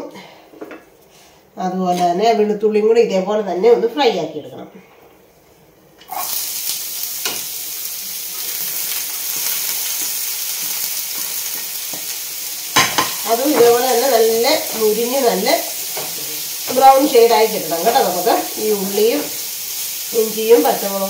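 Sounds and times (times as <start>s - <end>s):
food sizzling in a frying pan: 6.1s - 21.0s.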